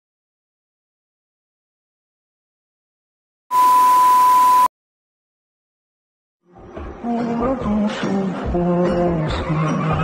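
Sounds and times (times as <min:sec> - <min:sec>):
high-pitched beep: 0:03.5 - 0:04.7.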